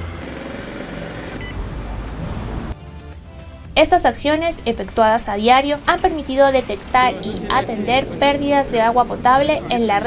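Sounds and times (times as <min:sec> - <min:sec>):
vehicle engine running: 0:00.0 - 0:02.8, 0:03.4 - 0:10.0.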